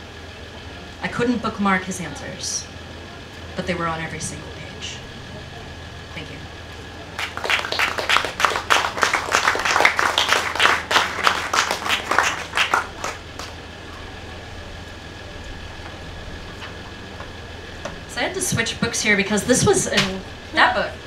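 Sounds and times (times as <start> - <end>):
low background hum: 0.0 - 21.0
audience clapping: 7.1 - 13.6.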